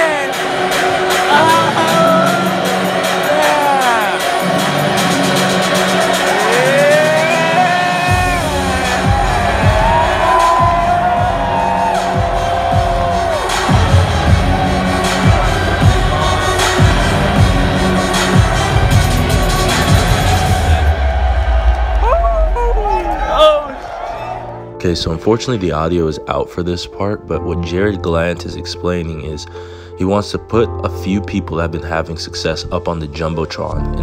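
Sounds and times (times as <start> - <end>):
heavy bass beat with drums: 1.2 - 20.8.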